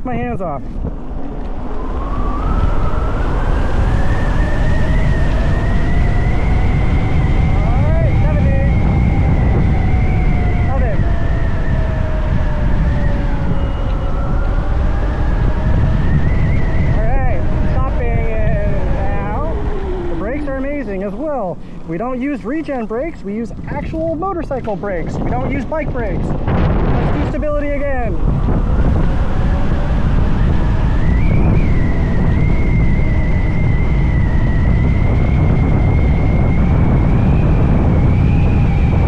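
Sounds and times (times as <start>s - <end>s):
wind on microphone: 0.0s - 39.0s
electric motorbike motor whining: 0.7s - 39.0s.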